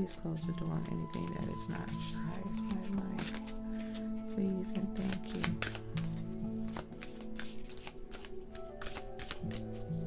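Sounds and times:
soft background music: 0:00.0 - 0:10.0
cards being shuffled: 0:00.1 - 0:10.0.

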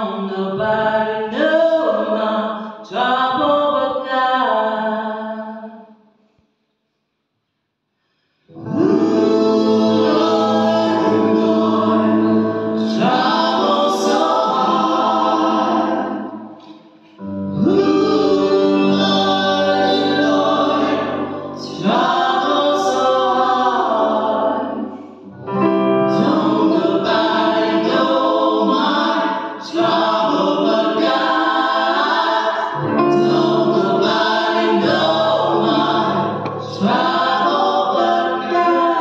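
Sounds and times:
vocal trio singing in harmony: 0:00.0 - 0:05.7, 0:08.4 - 0:39.0.

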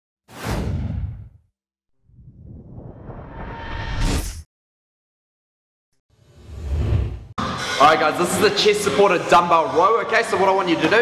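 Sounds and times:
whoosh with deep rumble: 0:02.0 - 0:04.4.

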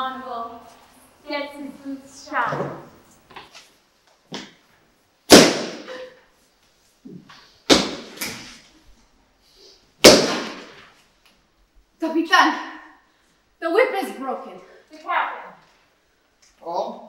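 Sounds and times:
sharp slaps or bangs: 0:05.3 - 0:06.0, 0:07.7 - 0:08.5, 0:10.0 - 0:10.9.

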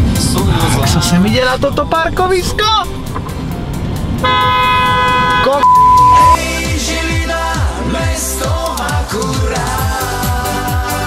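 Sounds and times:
music with falling bass sweeps: 0:00.0 - 0:11.0
horn note: 0:04.2 - 0:06.4
censor bleep tone: 0:05.1 - 0:06.4.

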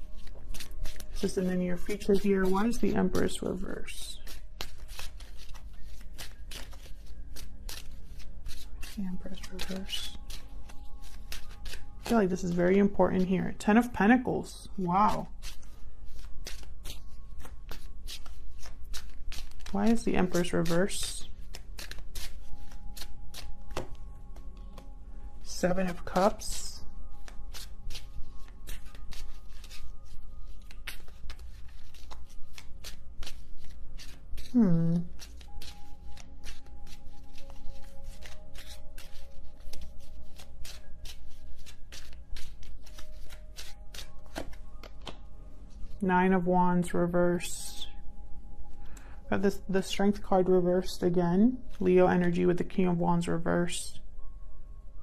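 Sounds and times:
cards being shuffled by hand: 0:00.0 - 0:13.6, 0:15.1 - 0:24.9, 0:27.1 - 0:45.3
soft background music: 0:00.0 - 0:55.0.

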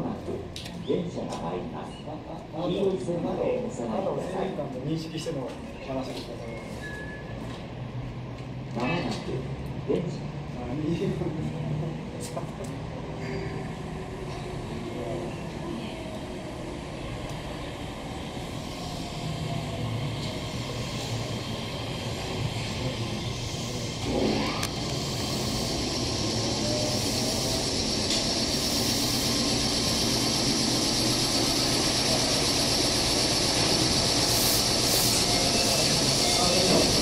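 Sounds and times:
electric train braking to a stop: 0:06.4 - 0:07.6, 0:16.6 - 0:37.0
high hiss of braking: 0:18.4 - 0:19.5, 0:20.2 - 0:37.0.

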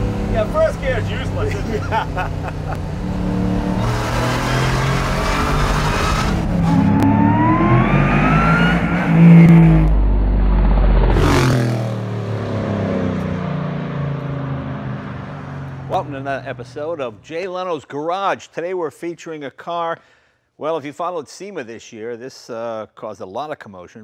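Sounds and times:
rising whine: 0:00.0 - 0:16.4
car engine revving past: 0:00.0 - 0:16.7.

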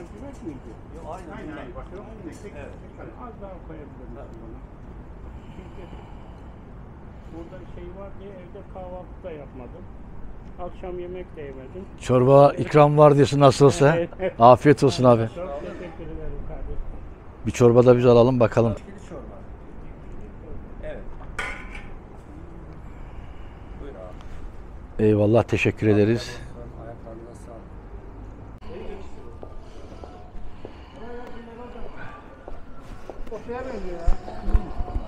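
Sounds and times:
faint voices murmuring: 0:00.0 - 0:12.8, 0:13.4 - 0:17.7, 0:18.8 - 0:35.0.

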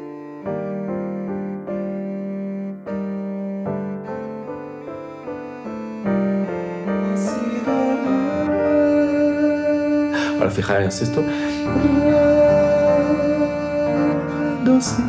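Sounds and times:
cello melody: 0:00.0 - 0:15.0
piano chords: 0:00.0 - 0:15.0.

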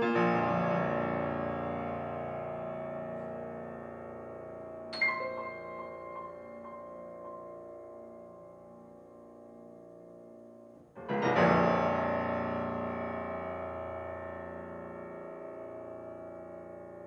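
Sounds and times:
loud piano chord ringing: 0:00.0 - 0:17.0
quiet piano chord: 0:00.0 - 0:17.0.

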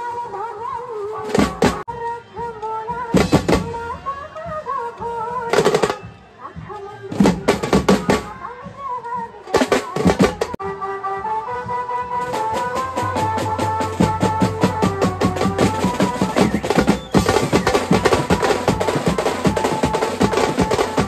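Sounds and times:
dhol and snare drums: 0:01.2 - 0:01.9, 0:02.9 - 0:10.8, 0:11.7 - 0:21.0.

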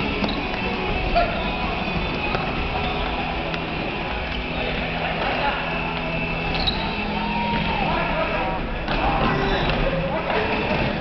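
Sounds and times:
footsteps on wooden court: 0:00.0 - 0:11.0
players calling out: 0:00.0 - 0:11.0.

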